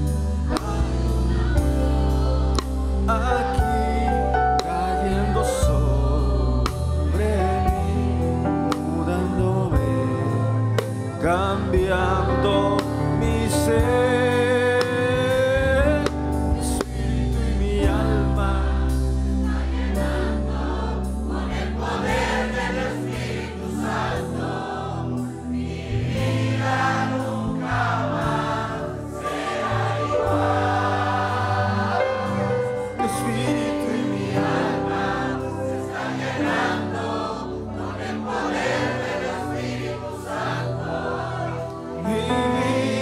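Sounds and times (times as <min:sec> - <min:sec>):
congregation singing: 0:00.0 - 0:43.0
band playing: 0:20.0 - 0:43.0.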